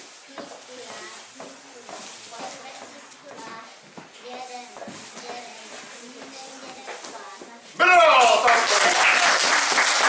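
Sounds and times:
crowd applauding: 8.1 - 10.0.

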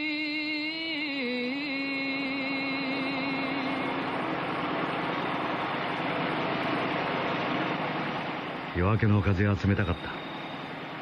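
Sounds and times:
steady rushing noise: 1.9 - 11.0.

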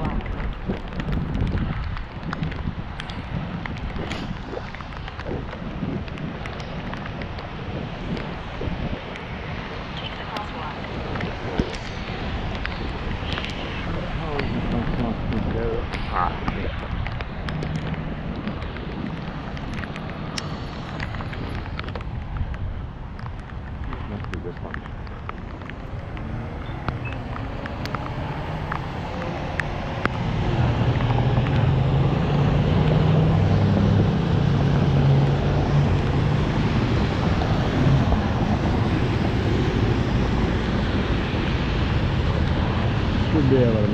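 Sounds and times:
cars passing on wet pavement: 0.0 - 43.9
vehicle engine rumble: 0.0 - 43.9
wind on microphone: 0.0 - 43.9.

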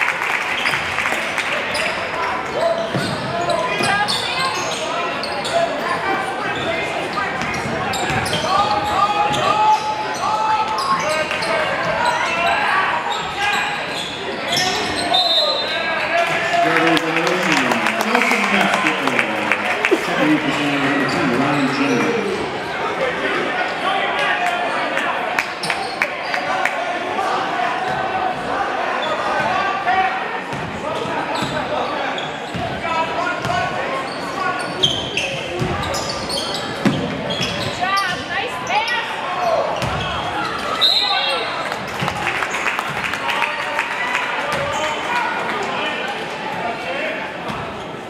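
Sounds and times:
crowd chatter in echoing gym: 0.0 - 48.0.

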